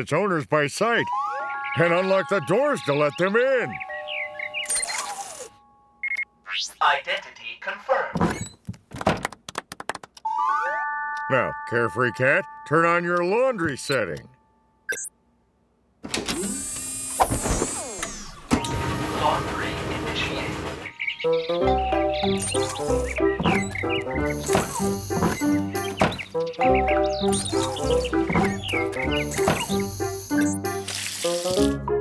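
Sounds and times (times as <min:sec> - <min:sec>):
held synth notes: 0:01.0 - 0:04.7
chirping beeps: 0:01.0 - 0:06.7, 0:11.0 - 0:14.2, 0:14.9 - 0:15.1, 0:20.6 - 0:30.8.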